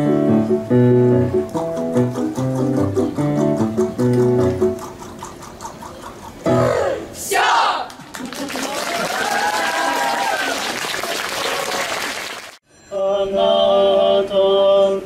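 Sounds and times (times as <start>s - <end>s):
voices over clapping: 7.3s - 12.5s
audience applauding: 7.9s - 12.6s
choral music with instruments: 12.6s - 15.0s.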